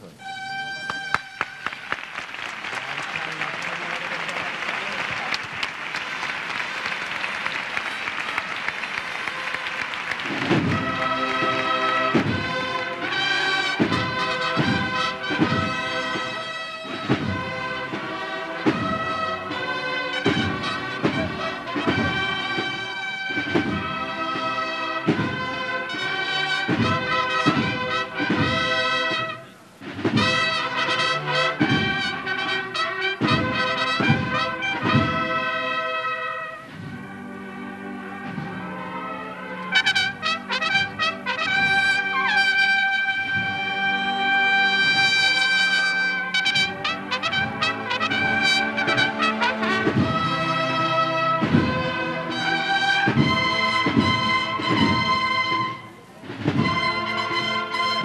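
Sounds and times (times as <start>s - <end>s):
bugles playing march: 0.0s - 58.0s
drum strokes: 3.4s - 58.0s.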